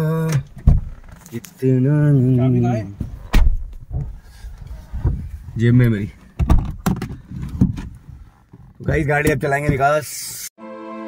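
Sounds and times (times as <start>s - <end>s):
dull low knocks: 0.4s - 1.2s, 2.9s - 9.9s
man speaking: 1.3s - 3.0s, 8.9s - 10.5s.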